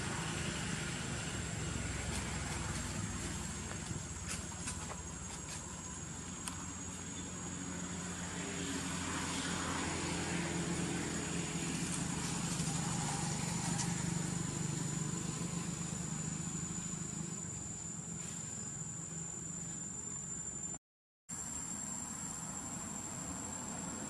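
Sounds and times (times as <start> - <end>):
distant vehicle motor hum: 0.0 - 20.6.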